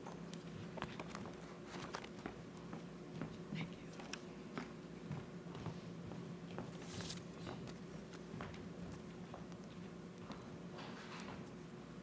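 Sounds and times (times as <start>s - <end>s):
whispered voices: 3.3s - 4.5s
footsteps on a stage floor: 4.5s - 9.5s.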